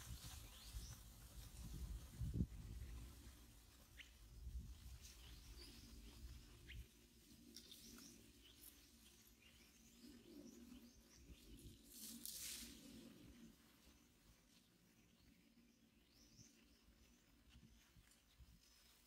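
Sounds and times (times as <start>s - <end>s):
faint forest ambience: 0.0s - 19.0s
faint bird chirps: 3.8s - 19.0s
hissing rustle: 11.5s - 14.0s.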